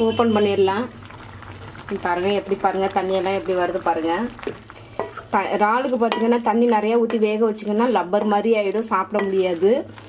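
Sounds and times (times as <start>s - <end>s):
woman's voice: 0.0s - 0.9s, 5.3s - 10.0s
food simmering and bubbling: 0.0s - 10.0s.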